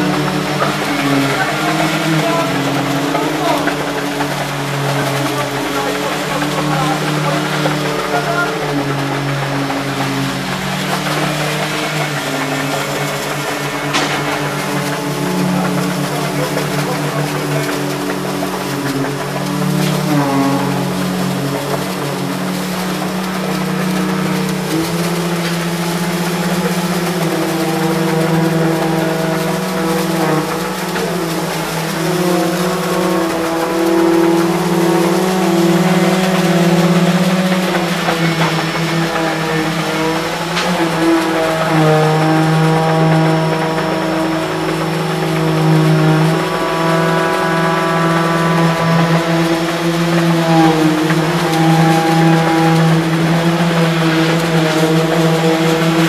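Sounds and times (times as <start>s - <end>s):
heavy diesel engines running: 0.0s - 56.0s
sharp knocks: 9.2s - 20.0s.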